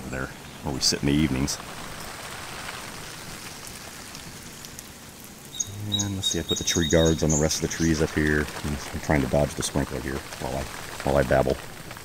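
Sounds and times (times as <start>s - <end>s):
sprinkler water spray hissing: 0.7s - 12.0s.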